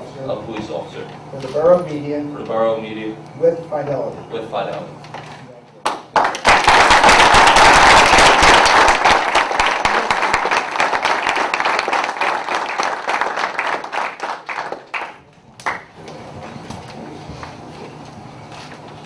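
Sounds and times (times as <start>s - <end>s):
people applauding: 5.8s - 16.0s.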